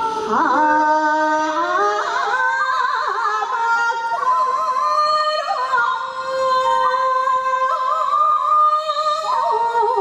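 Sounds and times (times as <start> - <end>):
woman singing folk song: 0.1 - 10.0.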